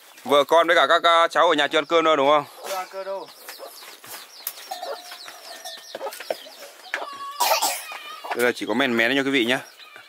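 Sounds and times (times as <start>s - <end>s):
chickens clucking and cheeping: 0.0s - 10.0s.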